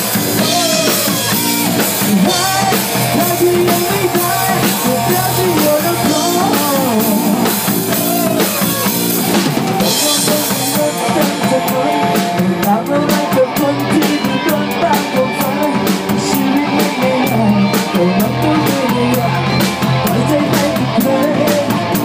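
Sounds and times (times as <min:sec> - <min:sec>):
drum kit beat: 0:00.0 - 0:22.0
electric guitars through amplifiers: 0:00.0 - 0:22.0.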